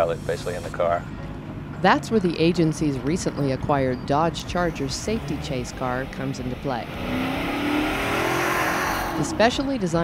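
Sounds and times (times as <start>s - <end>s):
car engine at speed: 4.3s - 10.0s.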